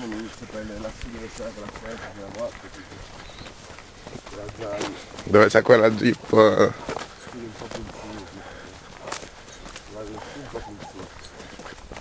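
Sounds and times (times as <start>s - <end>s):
low indistinct talking: 0.0s - 11.9s
footsteps through dry brush: 0.0s - 12.0s.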